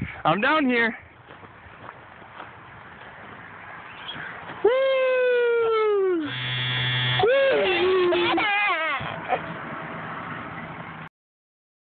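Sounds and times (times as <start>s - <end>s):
person whooping: 4.6s - 6.3s, 7.2s - 8.9s
child squealing: 4.7s - 9.4s
buzzing: 6.3s - 8.4s.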